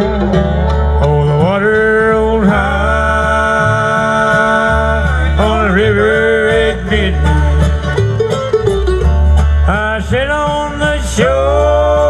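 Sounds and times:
banjo: 0:00.0 - 0:12.0
dobro slide guitar: 0:00.0 - 0:12.0
guitar: 0:00.0 - 0:12.0
mandolin: 0:00.0 - 0:12.0
sliding lead melody: 0:00.0 - 0:12.0
upright bass: 0:00.0 - 0:12.0.

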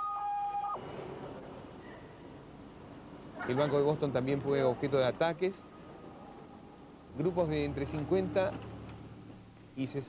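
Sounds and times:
electronic alarm two steady tones: 0:00.0 - 0:00.8
faint background hiss: 0:00.4 - 0:10.0.

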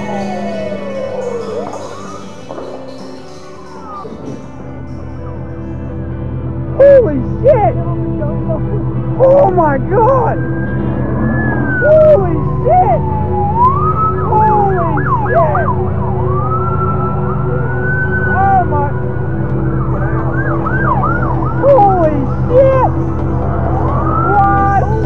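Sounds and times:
police sirens wailing and yelping: 0:00.0 - 0:04.6, 0:09.2 - 0:25.0
low drone: 0:00.0 - 0:25.0.

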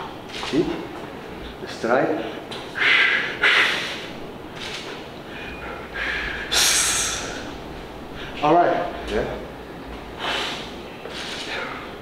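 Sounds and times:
sharp forceful breaths: 0:02.7 - 0:08.4, 0:10.2 - 0:11.9.

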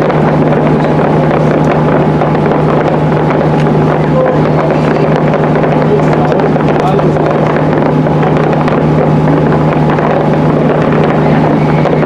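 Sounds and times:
fireworks crackling: 0:00.0 - 0:12.0
low hum: 0:00.0 - 0:12.0
voices: 0:00.0 - 0:12.0.

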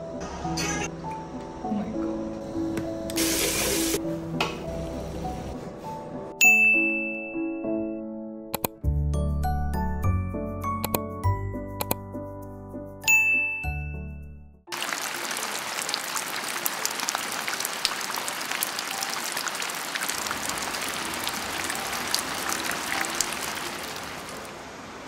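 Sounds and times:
chiming jingle: 0:06.4 - 0:08.0, 0:13.0 - 0:14.4
steady rain: 0:14.7 - 0:25.0.

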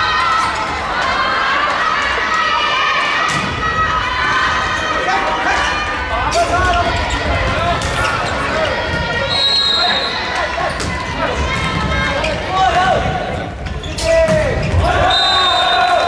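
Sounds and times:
players shouting: 0:00.0 - 0:16.0.

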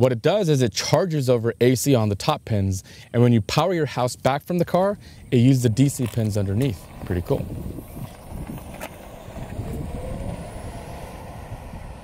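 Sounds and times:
faint rising electric whine: 0:05.2 - 0:12.0
tyre and road noise: 0:05.6 - 0:12.0.

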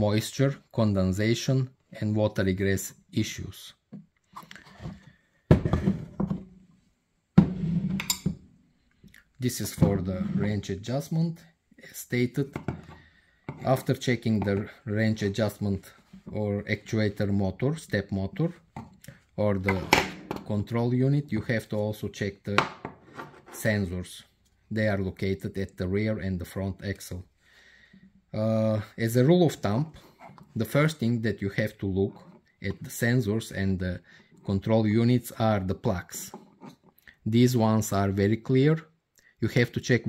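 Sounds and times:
dull knocks on wooden workbench: 0:07.4 - 0:07.6.

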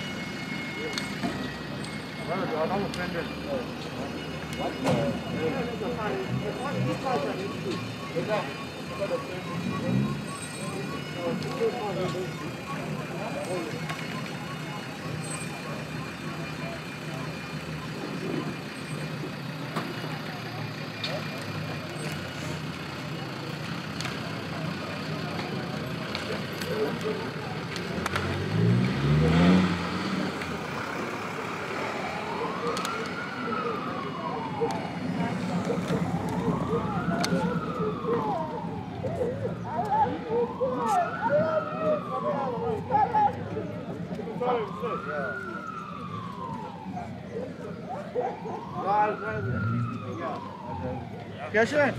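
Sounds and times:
car engines idling: 0:00.0 - 0:51.9
vehicle siren wailing: 0:00.0 - 0:51.9
engine revving: 0:27.0 - 0:38.3.

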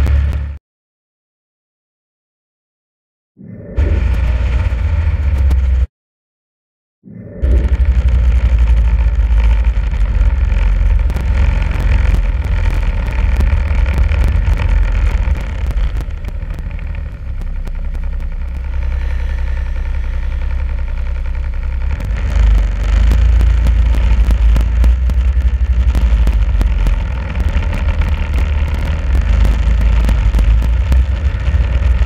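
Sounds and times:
snowmobile engine rumbling: 0:00.0 - 0:00.6, 0:03.8 - 0:05.9, 0:07.3 - 0:32.0.

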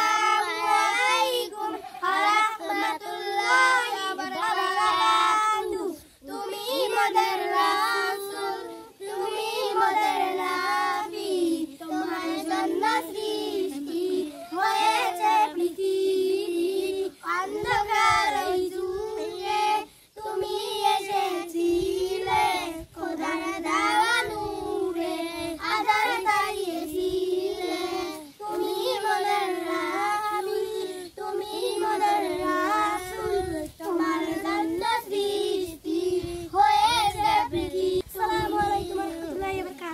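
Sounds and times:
children singing in unison: 0:00.0 - 0:39.9.

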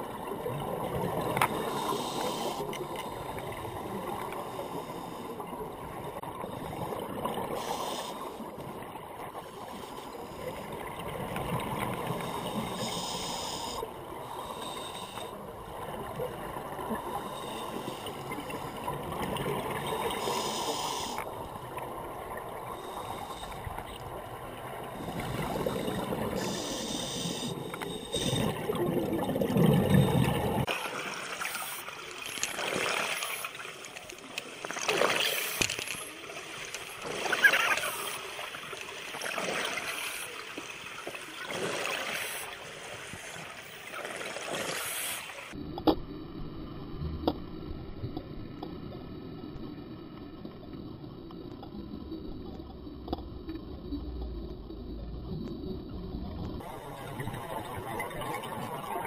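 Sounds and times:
air hissing through regulator: 0:25.2 - 0:28.6
bubbling exhalations underwater: 0:28.2 - 0:30.7.

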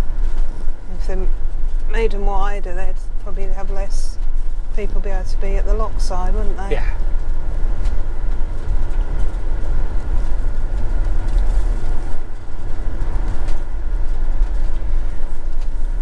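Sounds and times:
engine and road noise rumble: 0:00.0 - 0:16.0.

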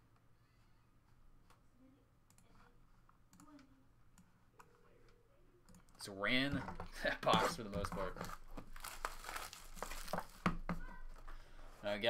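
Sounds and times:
wrapping crinkling and tearing: 0:08.2 - 0:10.5.

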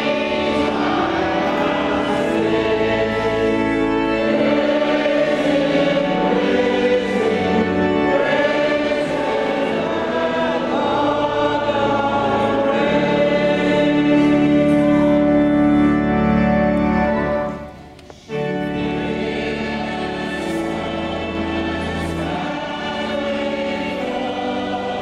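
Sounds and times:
congregation singing a hymn: 0:00.0 - 0:25.0
organ chords: 0:00.0 - 0:25.0.

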